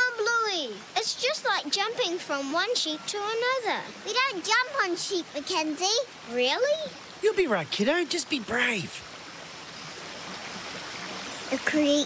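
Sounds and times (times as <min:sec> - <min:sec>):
creek water running: 0:00.0 - 0:12.0.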